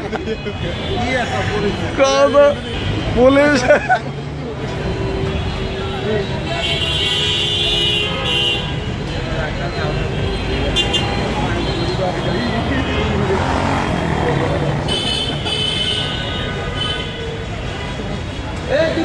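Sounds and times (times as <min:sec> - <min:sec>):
traffic engines rumbling: 0:00.0 - 0:19.0
vehicle horns honking: 0:04.9 - 0:09.1, 0:09.8 - 0:18.0.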